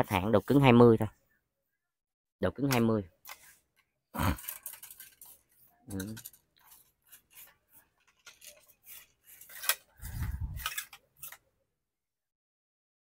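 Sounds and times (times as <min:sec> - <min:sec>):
fishing rod clicks and rubbing: 0:04.4 - 0:11.4.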